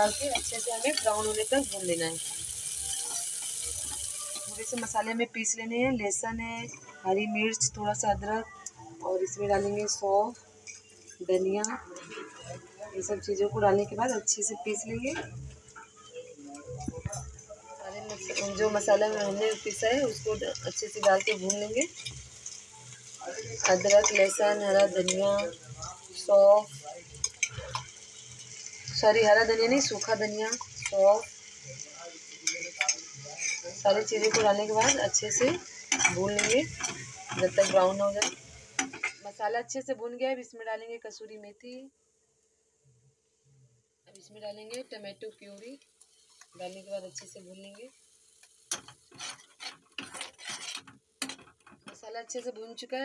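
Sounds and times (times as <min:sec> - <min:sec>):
metal spatula scraping a pan: 0:00.0 - 0:05.2, 0:17.8 - 0:31.6, 0:32.2 - 0:39.3, 0:46.0 - 0:52.7.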